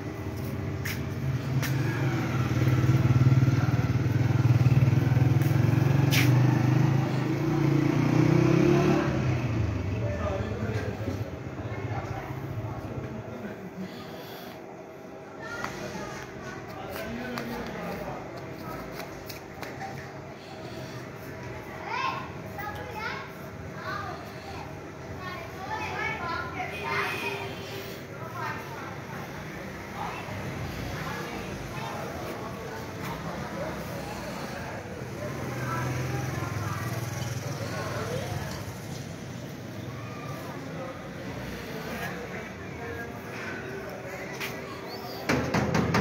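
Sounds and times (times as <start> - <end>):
children calling and shouting: 0.0 - 46.0.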